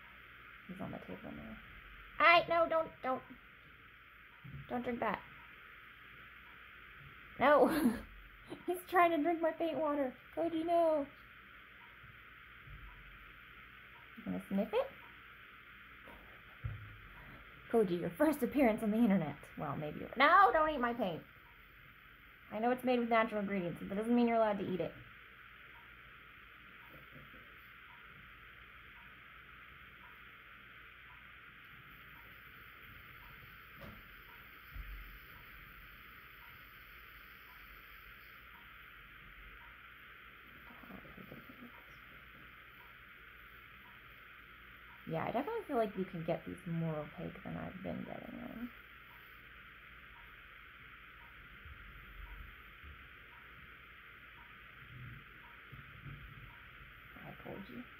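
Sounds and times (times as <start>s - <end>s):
faint ticking: 0.0s - 7.4s, 8.1s - 57.9s
faint room hiss: 0.0s - 57.9s
faint low thump: 16.6s - 17.1s, 55.0s - 56.6s.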